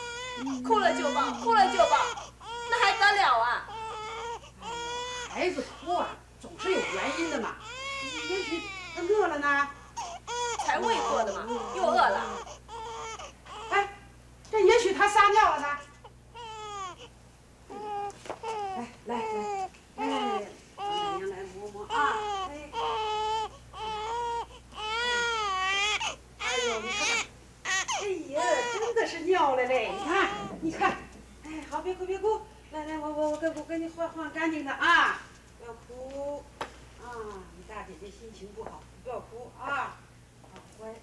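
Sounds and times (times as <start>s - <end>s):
woman speaking: 0.0s - 9.9s, 10.6s - 12.5s, 13.6s - 16.0s, 18.6s - 23.2s, 26.4s - 27.3s, 27.9s - 41.0s
infant crying: 0.0s - 13.9s, 16.3s - 17.1s, 17.7s - 21.3s, 21.9s - 30.6s.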